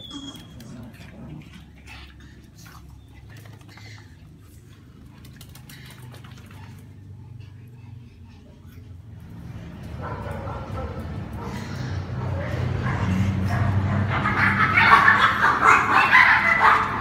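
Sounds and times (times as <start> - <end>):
dogs yipping and barking: 0.0 - 4.2, 9.8 - 17.0.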